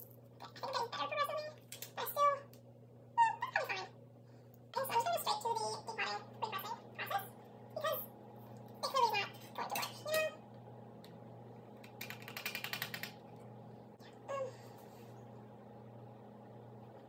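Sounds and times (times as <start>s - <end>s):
high-pitched vocal sounds: 14.0s - 14.7s.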